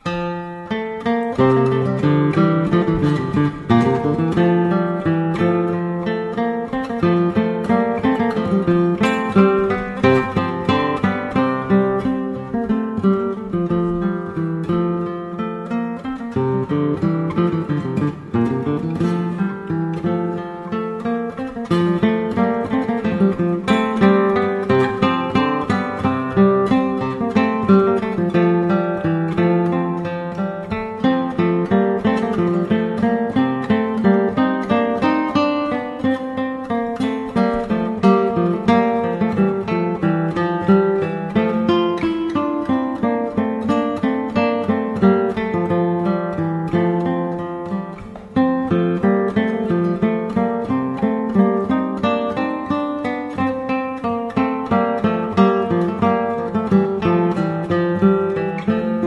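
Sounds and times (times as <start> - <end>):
acoustic guitar music: 0.0 - 59.0.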